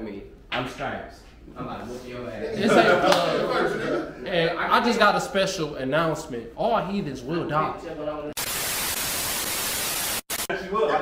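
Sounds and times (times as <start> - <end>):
tv static hiss: 8.4 - 10.6.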